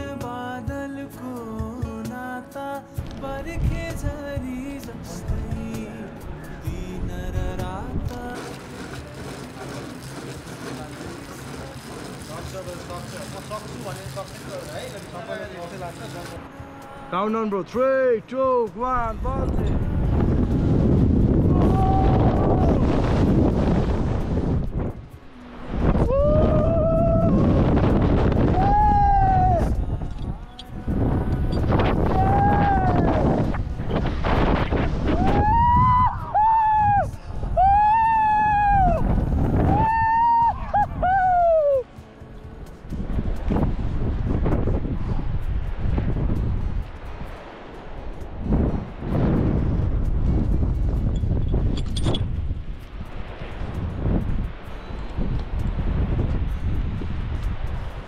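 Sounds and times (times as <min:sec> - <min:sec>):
wind rushing over microphone: 0:19.0 - 0:58.0
person yelling: 0:21.5 - 0:22.8, 0:28.5 - 0:29.7, 0:32.1 - 0:33.1.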